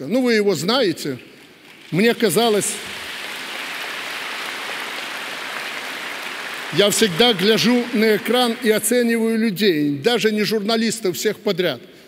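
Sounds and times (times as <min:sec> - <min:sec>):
audience applauding: 0:01.5 - 0:09.2.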